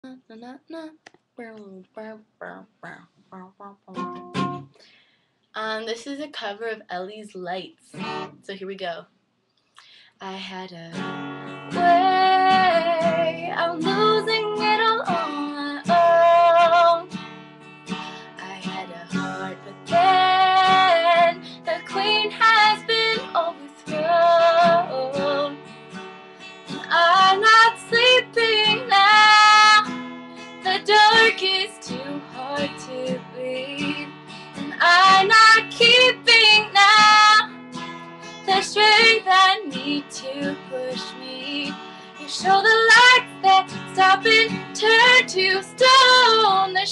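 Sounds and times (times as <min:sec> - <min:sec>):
woman singing: 0:01.8 - 0:04.6, 0:11.7 - 0:17.2, 0:18.2 - 0:25.7, 0:26.7 - 0:30.0, 0:30.6 - 0:37.5, 0:38.4 - 0:46.9
strummed acoustic guitar: 0:03.6 - 0:04.8, 0:07.9 - 0:08.5, 0:10.9 - 0:46.9.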